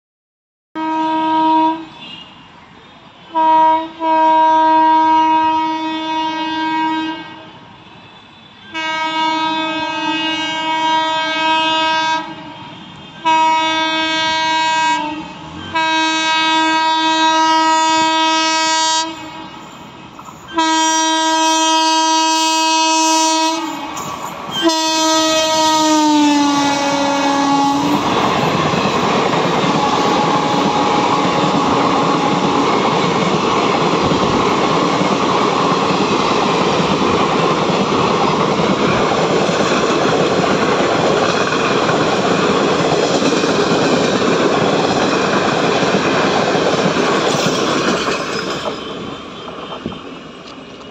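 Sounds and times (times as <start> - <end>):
train horn blasts: 0.8 - 2.5, 3.2 - 32.7
train wheels on rails: 7.5 - 50.9.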